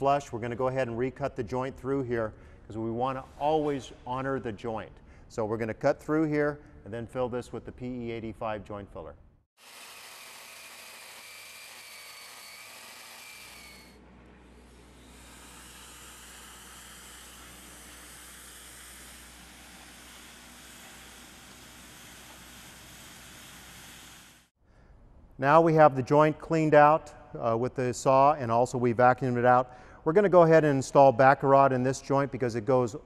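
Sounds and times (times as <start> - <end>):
power saw cutting concrete: 9.6 - 24.5
steady machine hum and hiss: 14.0 - 24.5.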